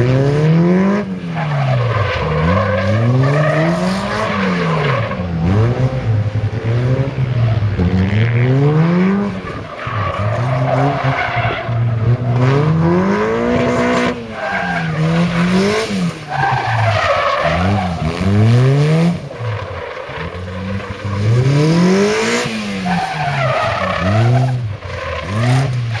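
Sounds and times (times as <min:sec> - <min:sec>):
car engine revving: 0:00.0 - 0:26.0
tyres squealing on tarmac: 0:01.3 - 0:05.6, 0:09.4 - 0:12.8, 0:13.5 - 0:26.0.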